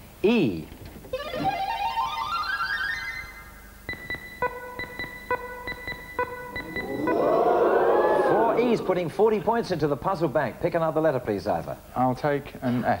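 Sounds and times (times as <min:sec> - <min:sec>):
short electronic beeps: 0:03.9 - 0:07.4
rising synthesizer run: 0:06.4 - 0:08.9.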